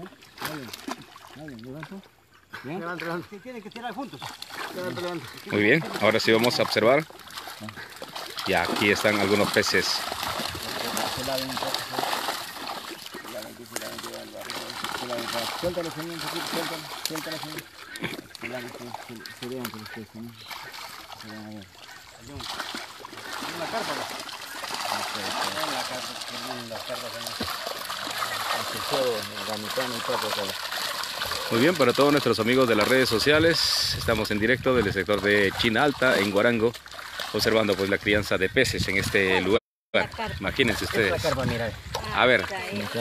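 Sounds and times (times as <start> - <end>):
fish thrashing in water: 0.0 - 2.0, 3.8 - 39.5, 40.2 - 43.0
voices talking: 0.0 - 43.0
water splashing and sloshing: 0.0 - 43.0.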